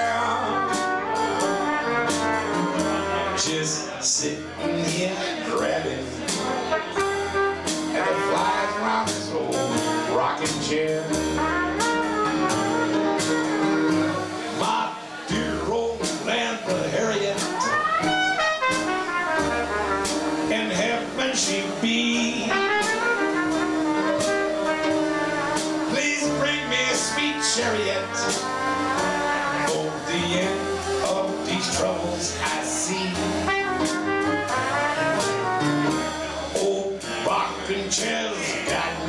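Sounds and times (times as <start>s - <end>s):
drums and cymbals: 0.0s - 39.0s
trumpet playing jazz: 0.0s - 39.0s
upright bass: 0.0s - 39.0s.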